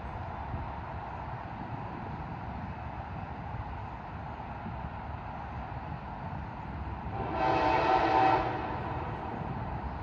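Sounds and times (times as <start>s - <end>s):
locomotive air horn blast: 7.2s - 9.1s.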